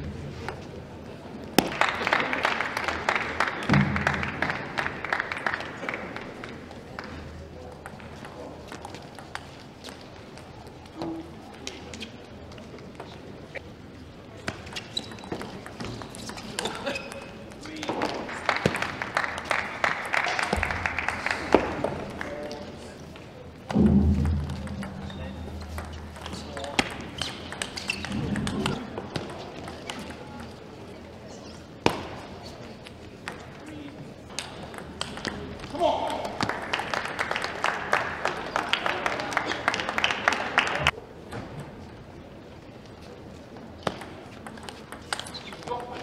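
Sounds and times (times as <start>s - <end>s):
voices in a hall: 0.0s - 46.0s.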